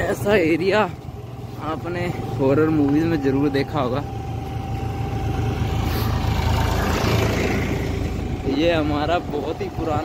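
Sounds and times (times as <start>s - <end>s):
motorcycle engine running: 0.0s - 10.0s
tractor passing: 0.0s - 10.0s.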